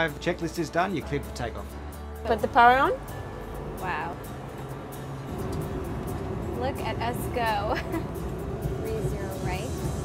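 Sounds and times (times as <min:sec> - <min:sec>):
jet engine low rumble: 0:04.3 - 0:10.0.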